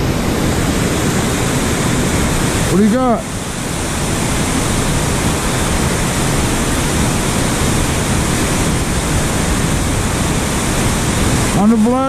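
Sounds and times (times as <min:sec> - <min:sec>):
turbulent creek water rushing: 0:00.0 - 0:12.0.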